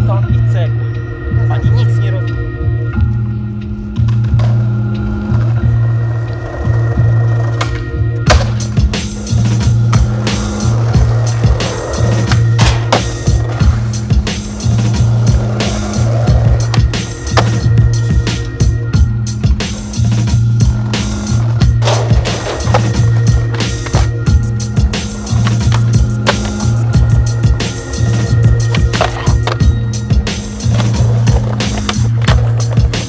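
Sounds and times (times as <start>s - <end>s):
skateboard wheels rolling on pavement: 3.6s - 33.0s
skateboard clacks: 7.4s - 18.1s, 20.7s - 33.0s
music with heavy bass line: 8.0s - 33.0s.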